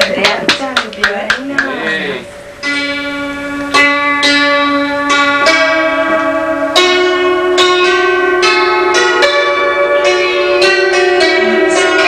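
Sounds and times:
hammered dulcimer melody: 0:00.0 - 0:12.0.

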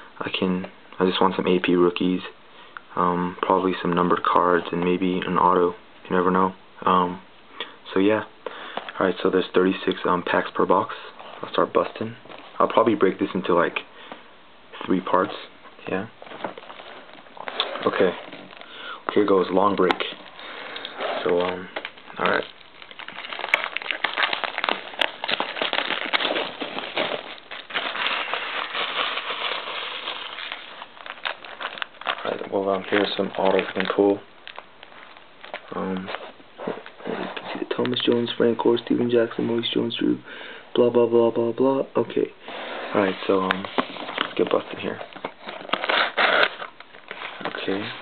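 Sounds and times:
plastic shrink-wrap crinkling: 0:15.8 - 0:39.3, 0:43.0 - 0:48.0.

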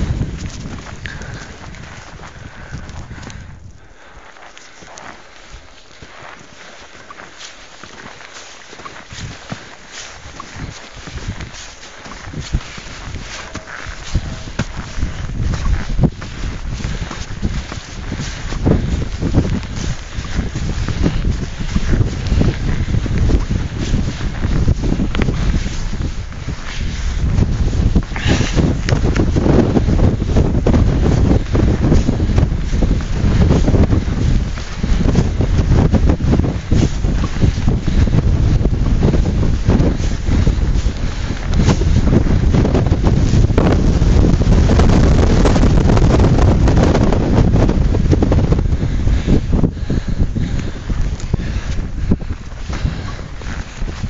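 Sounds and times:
strong wind buffeting microphone: 0:00.0 - 0:54.0.

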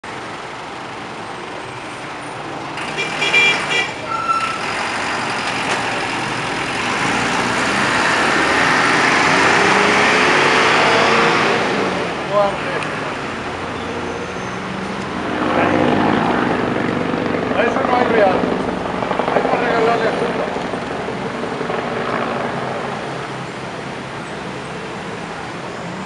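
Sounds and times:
vehicle passing close by: 0:02.7 - 0:23.4.

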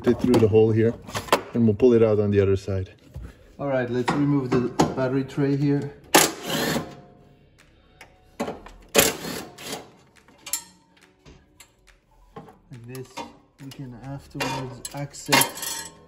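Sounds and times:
cordless impact driver bursts: 0:06.2 - 0:06.9, 0:09.0 - 0:09.9.

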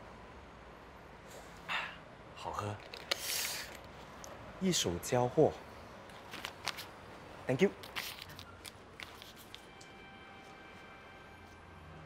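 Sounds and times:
breathy exhale: 0:01.6 - 0:02.0.

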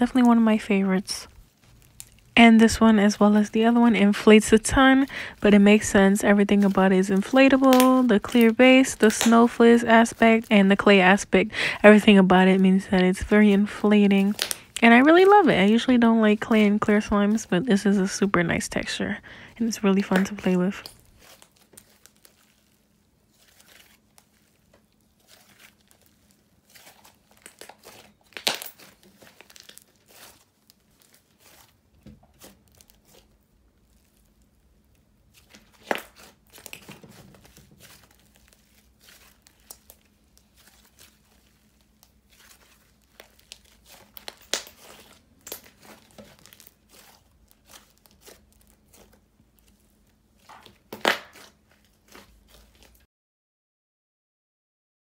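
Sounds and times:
slime crackling and popping: 0:01.2 - 0:17.6, 0:20.0 - 0:53.0.

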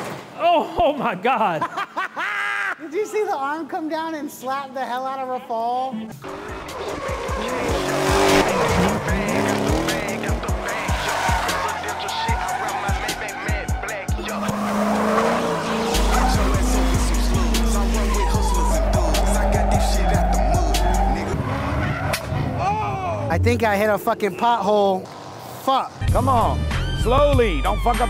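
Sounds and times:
tyres squealing: 0:06.2 - 0:25.3
car engines revving: 0:06.2 - 0:28.0
music with heavy bass: 0:06.3 - 0:21.3, 0:26.0 - 0:28.0.

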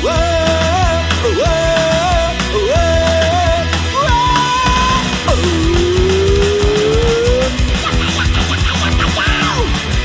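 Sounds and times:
punk rock band playing: 0:00.0 - 0:10.0
held note rising in pitch: 0:04.4 - 0:07.7.

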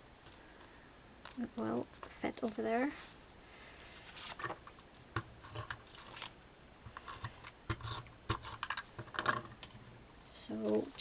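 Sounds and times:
paper and card handled on table: 0:04.0 - 0:04.7.

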